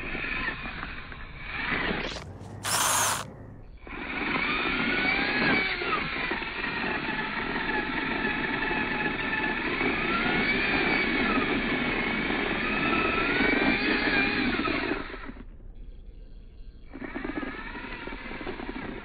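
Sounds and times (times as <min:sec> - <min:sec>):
toy car motor whining: 0:00.0 - 0:15.4, 0:16.8 - 0:19.0.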